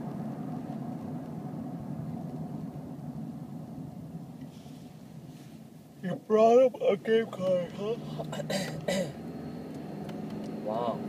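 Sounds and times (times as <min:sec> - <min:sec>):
vehicle engine low rumble: 0:00.0 - 0:11.0.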